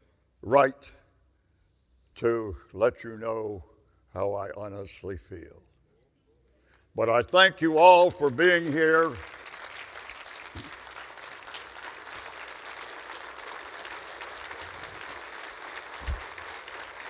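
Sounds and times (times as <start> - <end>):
audience applauding: 8.0 - 17.0.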